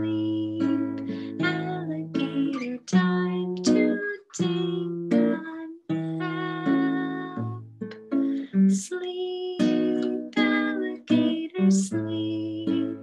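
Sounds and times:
woman singing: 0:00.0 - 0:13.0.

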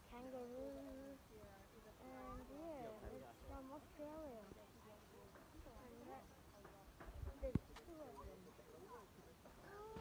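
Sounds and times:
faint distant human voices: 0:00.0 - 0:10.0.

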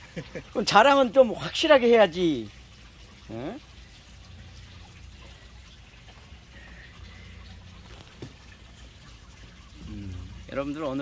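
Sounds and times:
faint water trickling: 0:00.0 - 0:11.0.

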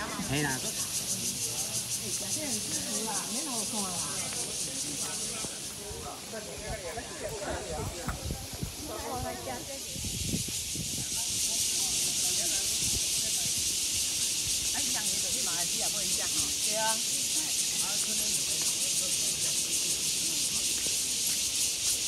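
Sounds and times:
cicadas buzzing: 0:00.0 - 0:22.0.

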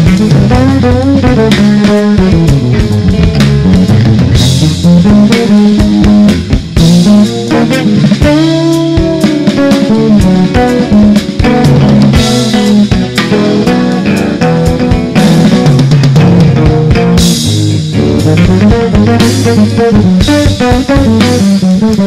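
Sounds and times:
jazz trio playing: 0:00.0 - 0:22.0
low bass notes: 0:00.0 - 0:22.0.

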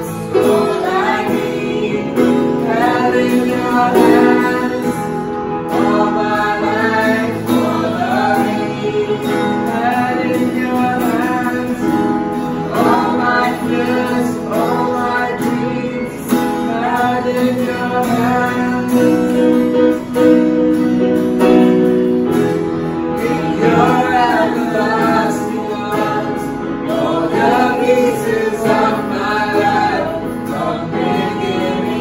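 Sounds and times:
man singing: 0:00.0 - 0:19.9, 0:23.2 - 0:32.0
digital keyboard: 0:00.0 - 0:32.0
strummed acoustic guitar: 0:00.0 - 0:32.0.

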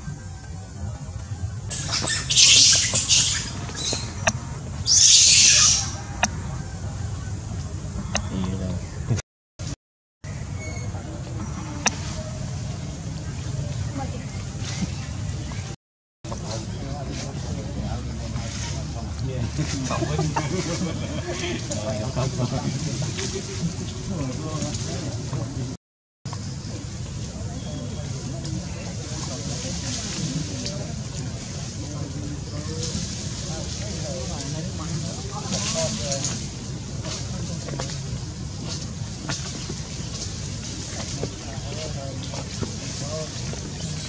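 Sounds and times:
indistinct voices calling: 0:00.0 - 0:09.2
low background noise: 0:00.0 - 0:44.0
macaque screaming: 0:01.7 - 0:04.3, 0:04.9 - 0:06.3.

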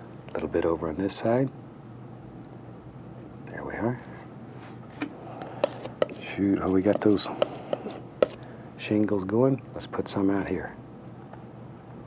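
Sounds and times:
faint room hum: 0:00.0 - 0:12.0
palette knife tapping canvas: 0:05.6 - 0:08.4.

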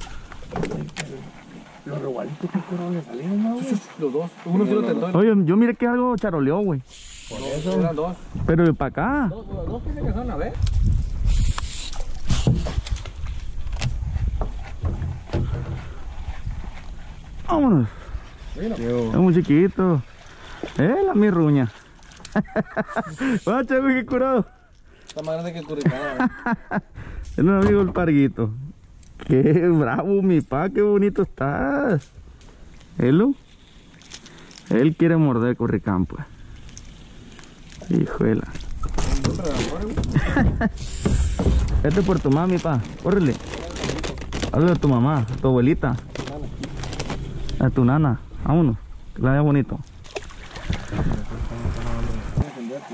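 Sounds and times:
fishing gear knocks and clatter: 0:12.0 - 0:16.1, 0:38.4 - 0:47.6
man talking: 0:37.8 - 0:40.2, 0:41.8 - 0:46.6, 0:50.9 - 0:52.9
low rumble: 0:41.2 - 0:49.2.

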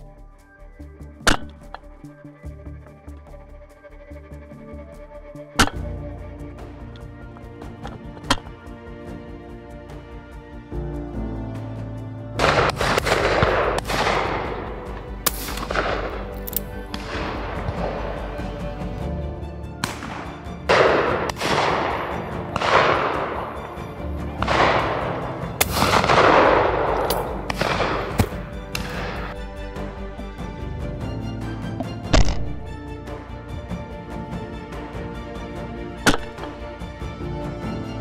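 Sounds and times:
background music: 0:00.0 - 0:38.0
echoing shotgun shots: 0:12.4 - 0:16.3, 0:16.9 - 0:18.0, 0:19.8 - 0:29.4.

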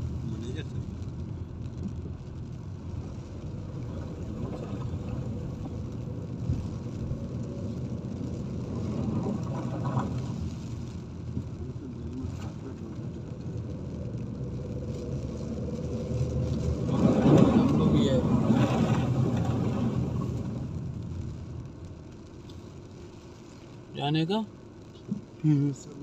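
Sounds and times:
car cabin rumble in rain: 0:00.0 - 0:26.0.

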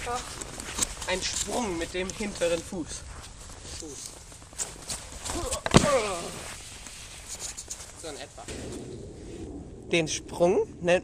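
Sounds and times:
footsteps on snow: 0:00.0 - 0:05.5
board thud on snow: 0:05.4 - 0:06.5.

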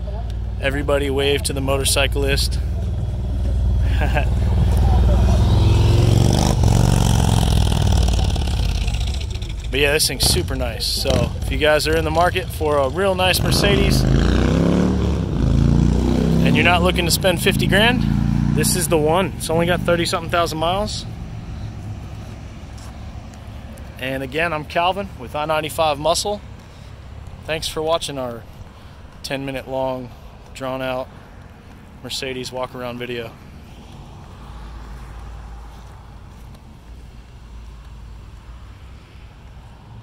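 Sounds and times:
motorcycle riding past: 0:00.1 - 0:24.0
car engine idling: 0:07.3 - 0:13.3.

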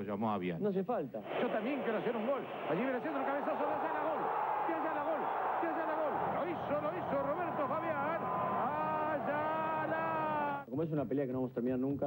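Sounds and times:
excited football commentary: 0:01.2 - 0:10.7
stadium crowd noise: 0:01.2 - 0:10.7
commentator's sustained goal shout: 0:01.9 - 0:10.6.

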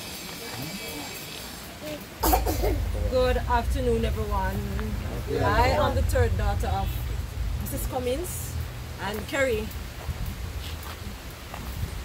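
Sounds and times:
person coughing: 0:02.2 - 0:02.9
low rumble: 0:02.2 - 0:12.0.

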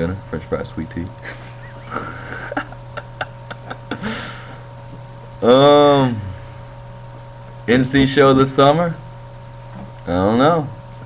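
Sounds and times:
steady electrical hum: 0:00.0 - 0:11.0
breathy exhale through nose: 0:04.0 - 0:04.6.

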